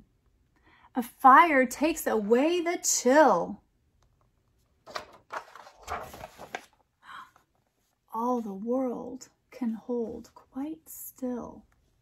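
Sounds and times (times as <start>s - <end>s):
paper page rustling: 4.8s - 6.9s.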